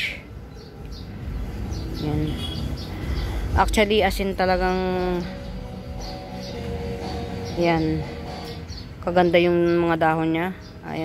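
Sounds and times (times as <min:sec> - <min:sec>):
faint bird chirps: 0:00.0 - 0:03.4.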